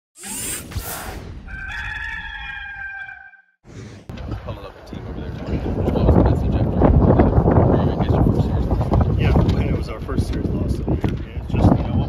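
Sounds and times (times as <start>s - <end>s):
rooster crowing: 1.5s - 3.5s
wind noise on microphone: 3.7s - 12.0s.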